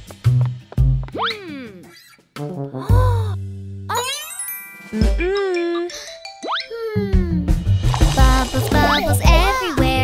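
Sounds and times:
cartoon background music: 0:00.3 - 0:10.0.

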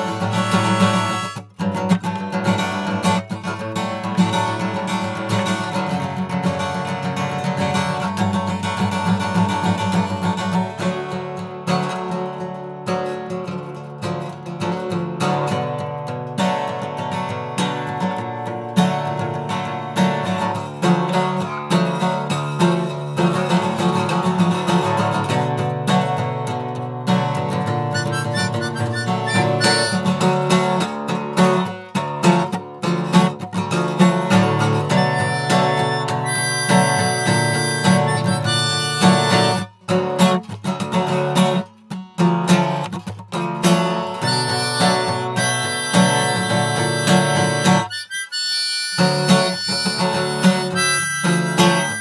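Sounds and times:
harmonica playing: 0:00.0 - 0:01.6, 0:27.9 - 0:30.8, 0:34.5 - 0:39.7, 0:44.2 - 0:52.0
acoustic guitar strumming: 0:00.0 - 0:52.0.

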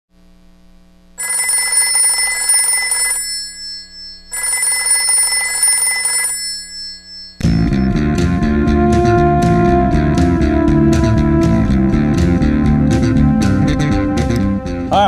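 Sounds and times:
faint hum: 0:00.2 - 0:04.9
telephone bell ringing: 0:01.2 - 0:07.9
music: 0:07.4 - 0:15.0.

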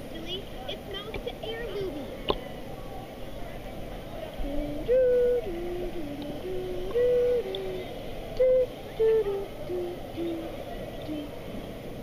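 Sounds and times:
hooting notes blown into inflatable toy: 0:04.4 - 0:10.5.

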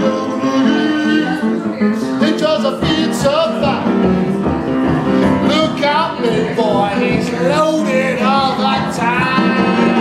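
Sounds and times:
boogie-woogie piano: 0:00.0 - 0:10.0.

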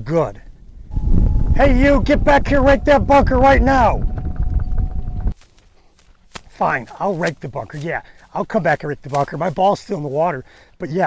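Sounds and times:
golf cart rumble and whine: 0:00.9 - 0:05.4.

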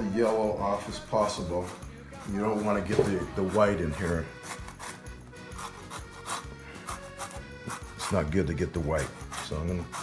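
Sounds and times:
zester scraping lemon peel: 0:01.6 - 0:10.0.

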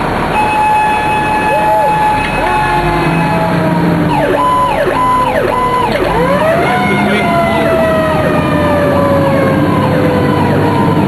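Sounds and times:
fire truck siren: 0:00.3 - 0:11.0.

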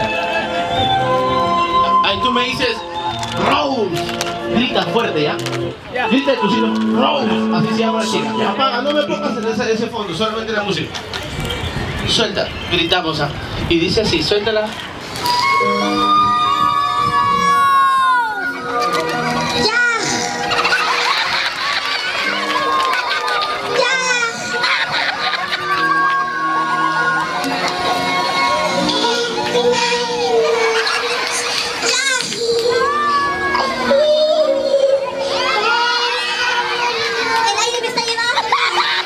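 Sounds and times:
background music: 0:00.0 - 0:10.4, 0:15.2 - 0:39.0
high voice calling in held notes: 0:06.0 - 0:09.9
steady high-pitched tone: 0:06.1 - 0:10.0.

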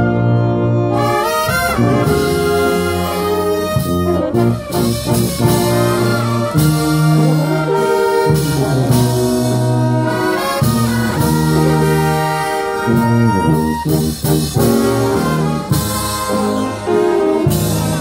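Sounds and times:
brass band playing slow tune: 0:00.0 - 0:18.0.

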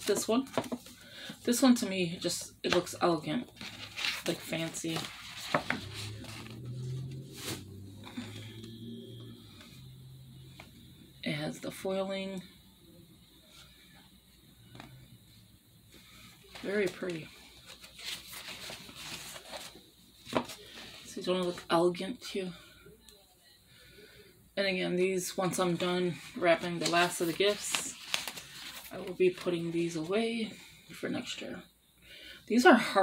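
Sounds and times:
paper sheets rustling: 0:00.0 - 0:01.0, 0:03.5 - 0:08.4, 0:16.0 - 0:21.1, 0:25.8 - 0:30.0
low steady hum: 0:00.0 - 0:32.7.

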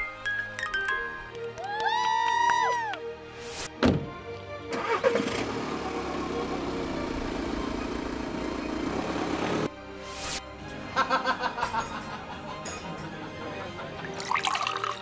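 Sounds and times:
car engine starting and running: 0:04.6 - 0:09.7.

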